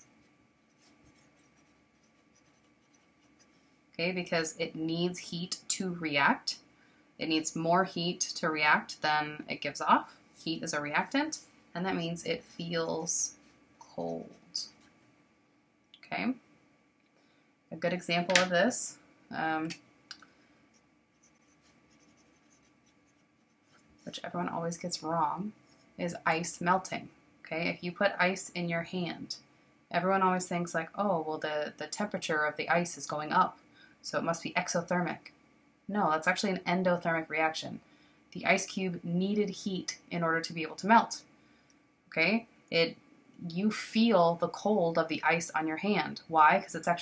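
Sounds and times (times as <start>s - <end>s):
marker scratching on paper: 0.7s - 3.6s, 21.1s - 24.3s.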